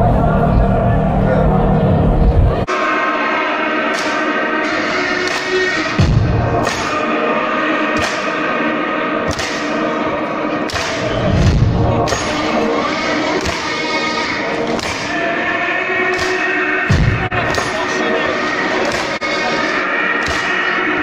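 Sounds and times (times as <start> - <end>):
deep booming hits: 6.0 - 6.7, 11.3 - 12.2, 16.9 - 17.6
heavy drum hits: 6.0 - 6.8, 16.9 - 17.7.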